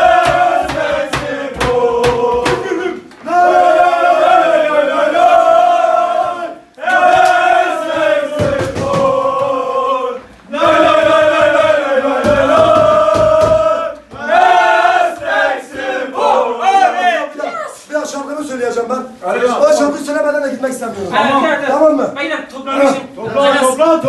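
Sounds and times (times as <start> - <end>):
men chanting in unison: 0.0 - 17.4.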